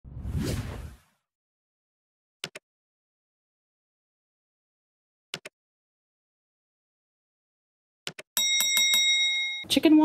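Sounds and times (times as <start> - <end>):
whoosh with deep rumble: 0.0 - 1.0.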